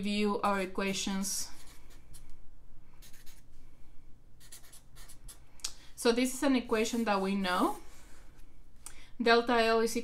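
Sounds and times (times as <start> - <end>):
marker writing on paper: 3.0 - 3.4, 4.4 - 5.4.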